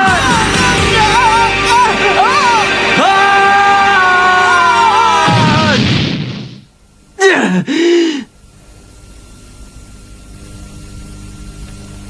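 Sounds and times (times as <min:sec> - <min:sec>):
music: 0:00.0 - 0:05.6
faint steady hum: 0:05.7 - 0:12.0
cartoon character groaning: 0:07.2 - 0:08.3.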